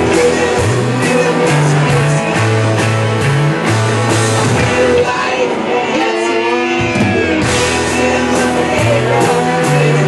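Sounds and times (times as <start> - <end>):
bass line: 0.0 - 10.0
electric guitar: 0.0 - 10.0
drum hits: 6.7 - 8.6.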